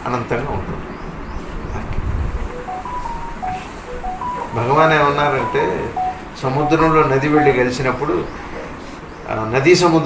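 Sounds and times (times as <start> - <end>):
three-note electronic tune: 2.4 - 8.0.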